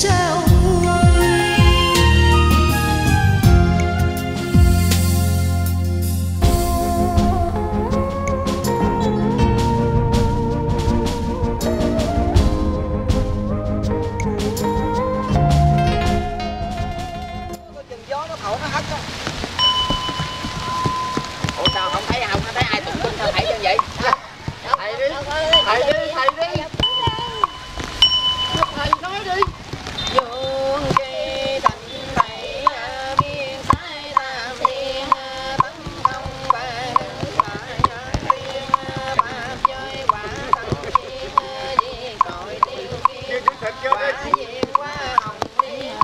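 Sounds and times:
rain patter: 0.0s - 46.0s
hollow wooden knocks: 19.3s - 46.0s
voices chanting a prayer: 21.6s - 27.7s, 28.5s - 46.0s
small bell ringing: 26.9s - 28.8s.

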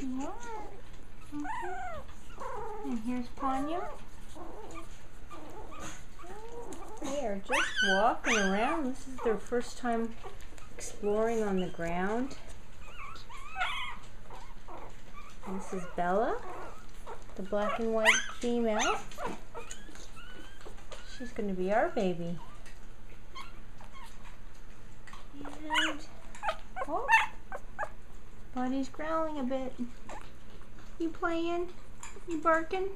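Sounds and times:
puppies whimpering: 0.0s - 24.6s, 25.4s - 28.1s.

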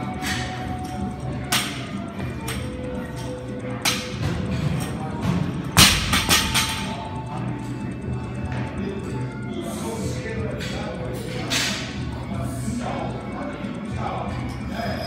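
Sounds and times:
background music with beat: 0.0s - 15.0s.

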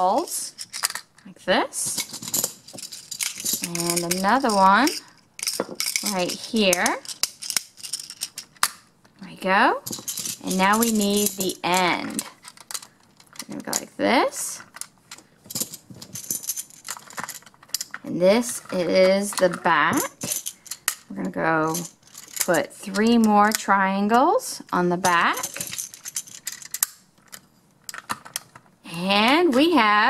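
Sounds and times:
plastic tiles clicking together: 2.0s - 8.8s.

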